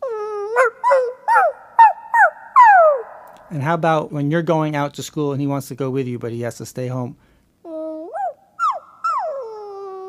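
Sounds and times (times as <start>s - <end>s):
dog whining: 0.0s - 3.2s, 7.7s - 10.0s.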